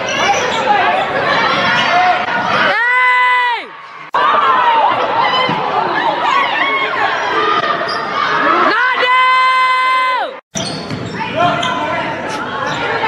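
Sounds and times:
voices calling out in echoing hall: 0.0s - 13.0s.

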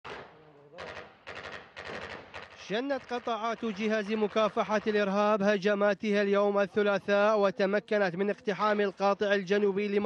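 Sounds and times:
automatic gunfire bursts: 0.1s - 3.8s
gunshot with echo: 0.1s - 5.1s.

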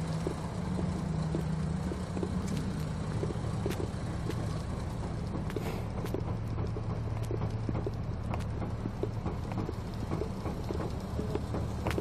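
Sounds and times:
footsteps on asphalt: 0.0s - 12.0s
steady low hum: 0.0s - 12.0s.

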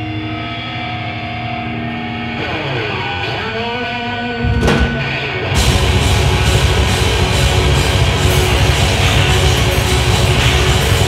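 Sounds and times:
electric guitars droning: 0.0s - 11.0s.

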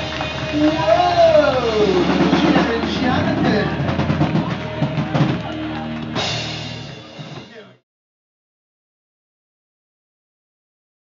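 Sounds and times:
crowd cheering and clapping: 0.0s - 7.8s
live rock band: 0.0s - 7.8s.

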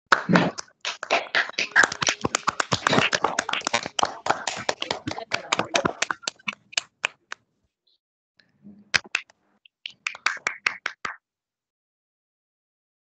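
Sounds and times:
hands clapping in applause: 0.1s - 7.4s, 9.0s - 11.2s.

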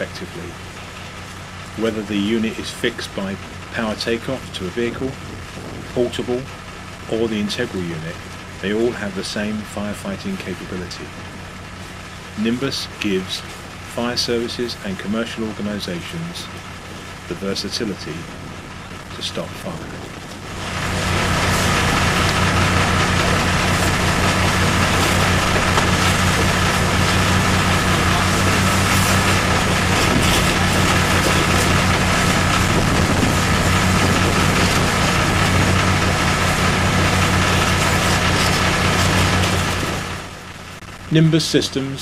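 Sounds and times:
engine-driven pump running: 0.0s - 42.0s.

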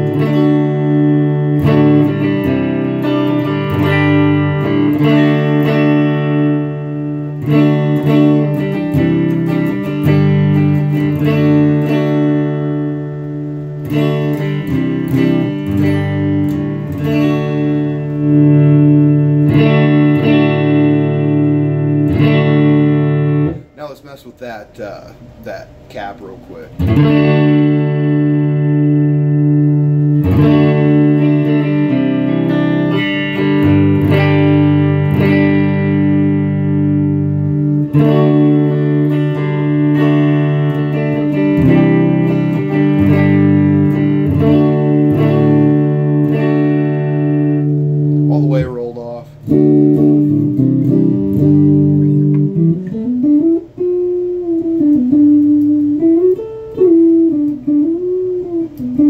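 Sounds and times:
clean electric guitar playing: 0.0s - 59.0s.

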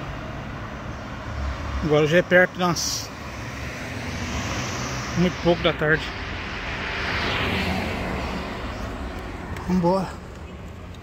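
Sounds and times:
vehicle passing: 0.0s - 11.0s.

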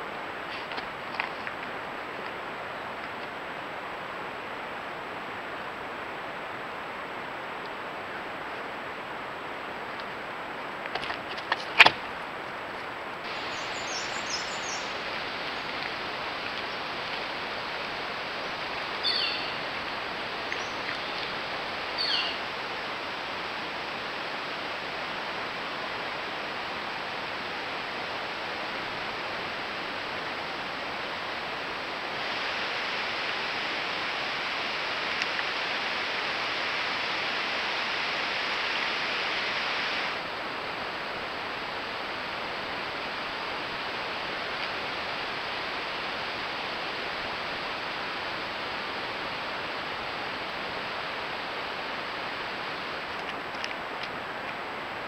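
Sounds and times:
outdoor ambient hiss: 0.0s - 55.0s.

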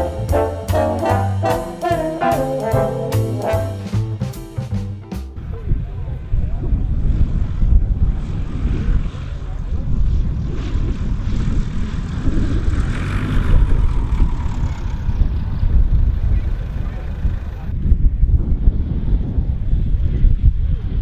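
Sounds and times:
propeller aircraft engine drone: 5.4s - 17.7s
wind rumble on microphone: 5.4s - 21.0s.

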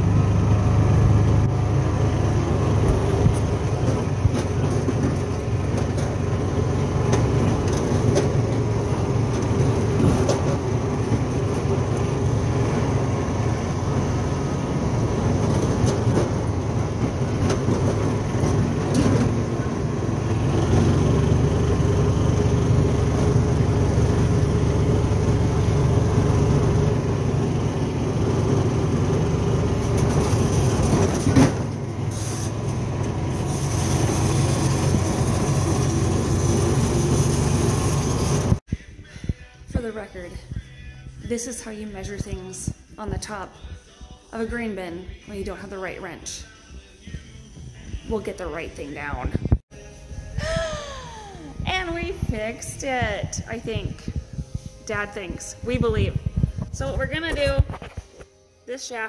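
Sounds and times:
vehicle engine drone: 0.0s - 42.9s, 46.1s - 58.4s
tyres on gravel: 2.7s - 13.2s.

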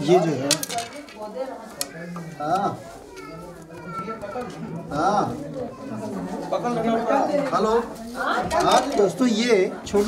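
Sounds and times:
people and children talking: 0.0s - 10.0s.

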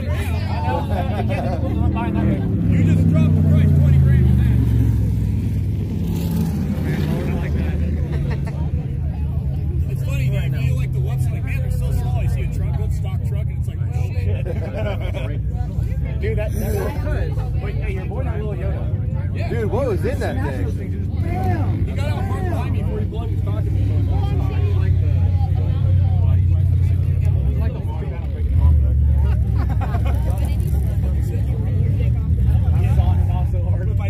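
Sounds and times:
utility vehicle engine passing: 0.0s - 12.3s.

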